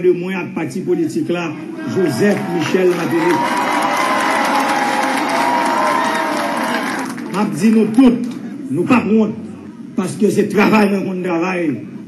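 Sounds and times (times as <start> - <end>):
crowd cheering and applauding: 1.8 - 8.0.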